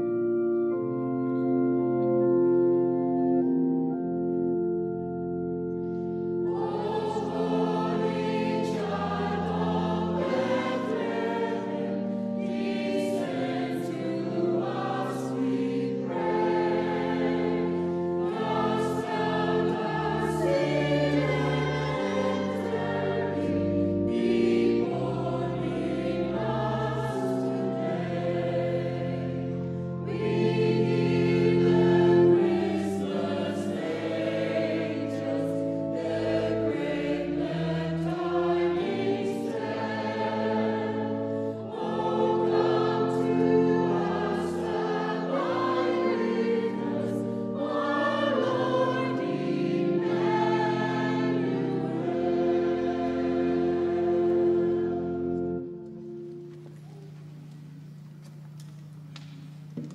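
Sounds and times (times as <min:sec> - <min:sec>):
choir singing a carol: 0:00.0 - 0:57.1
organ bass notes: 0:00.0 - 0:58.6.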